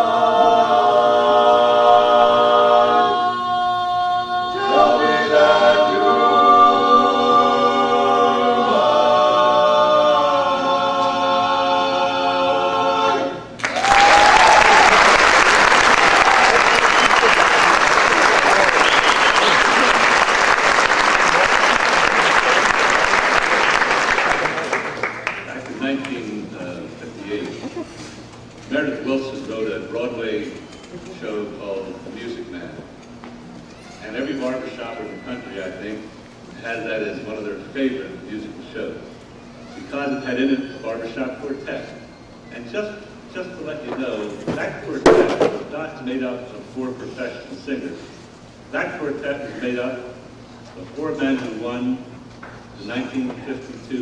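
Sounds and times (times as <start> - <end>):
barbershop quartet singing a cappella: 0.0 - 13.6.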